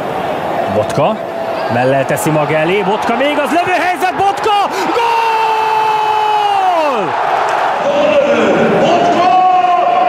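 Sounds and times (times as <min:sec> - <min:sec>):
stadium crowd cheering: 0:00.0 - 0:10.0
commentator shouting goal: 0:01.7 - 0:07.1.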